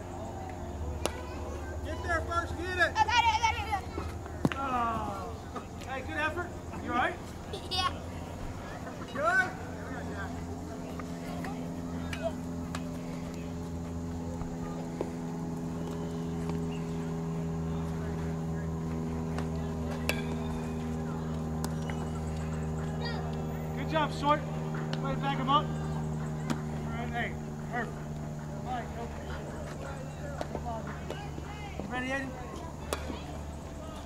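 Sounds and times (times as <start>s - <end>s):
distant voices calling: 0.0s - 34.0s
steady engine-like hum: 0.0s - 34.0s.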